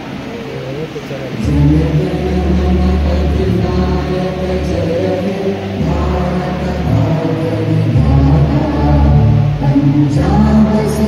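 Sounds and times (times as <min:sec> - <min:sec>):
group singing slowly: 0:01.3 - 0:11.0
musical accompaniment: 0:01.3 - 0:11.0.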